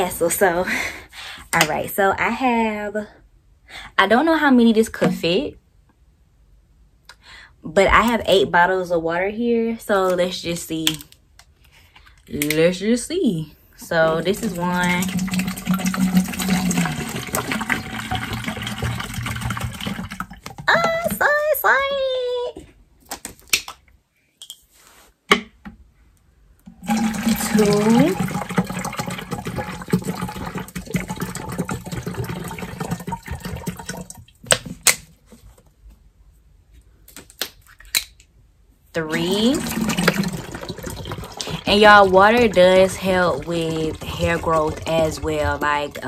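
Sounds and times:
water pouring into plastic jug: 14.1 - 21.2, 26.7 - 34.6, 39.1 - 46.0.

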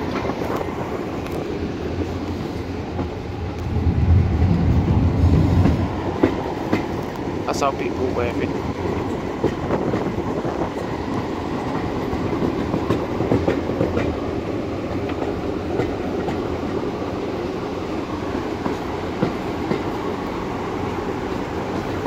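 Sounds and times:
train carriage rumbling on track: 0.0 - 22.0
wheels clicking over rail joints: 8.8 - 14.3.

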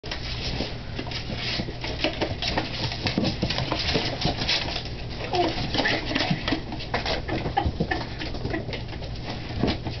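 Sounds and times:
ferrets scrambling: 0.1 - 10.0.

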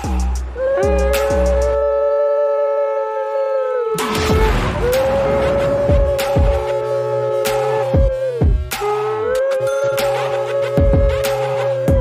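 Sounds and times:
conch shell blown: 3.2 - 12.0.

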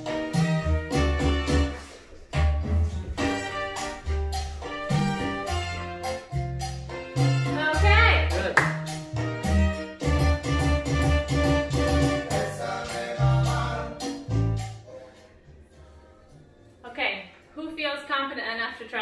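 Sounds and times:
latin dance music: 0.0 - 17.4
person singing: 12.2 - 14.4.

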